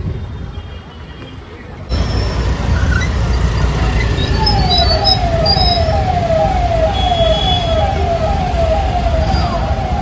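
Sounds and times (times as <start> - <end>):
idling traffic rumble: 0.0 - 10.0
electronic siren falling tone: 4.2 - 10.0.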